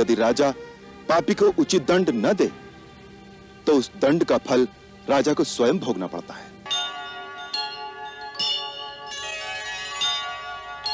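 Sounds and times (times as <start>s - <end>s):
bells ringing: 6.6s - 10.9s.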